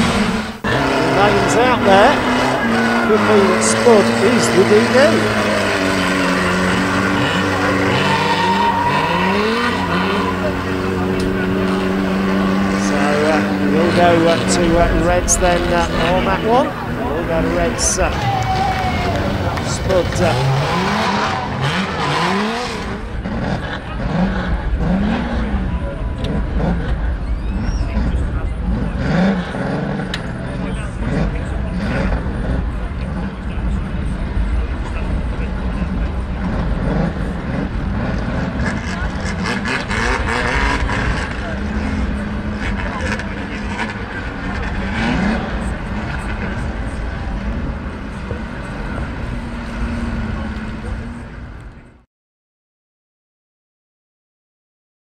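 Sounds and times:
race car engines revving: 0.0 - 52.1
voices: 0.0 - 52.1.

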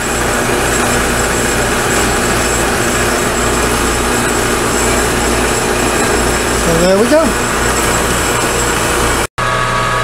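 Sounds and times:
metal-cutting bandsaw sawing steel: 0.0 - 9.3
metal lathe humming: 0.0 - 9.8.

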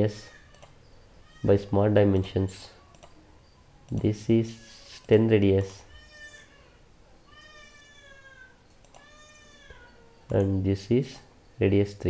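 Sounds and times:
faint high-pitched cries: 0.1 - 10.3.

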